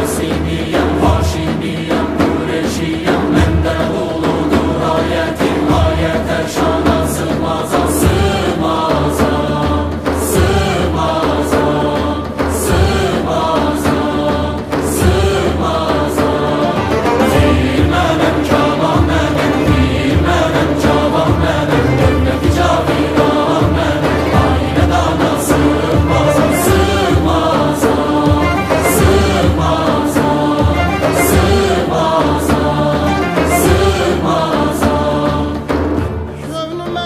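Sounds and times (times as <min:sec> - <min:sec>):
choir singing: 0:00.0 - 0:37.0
frame drums beating: 0:00.0 - 0:37.0
wind instruments: 0:12.8 - 0:35.6.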